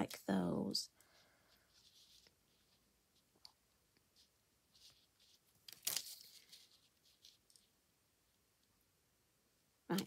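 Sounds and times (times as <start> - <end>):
paper rustling: 1.0 - 7.8.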